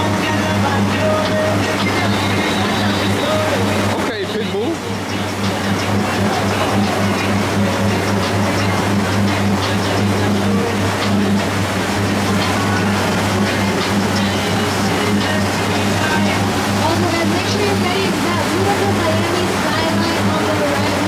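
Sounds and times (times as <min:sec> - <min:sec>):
boat engine drone: 0:00.0 - 0:21.0
music: 0:00.0 - 0:21.0
water noise: 0:00.0 - 0:21.0.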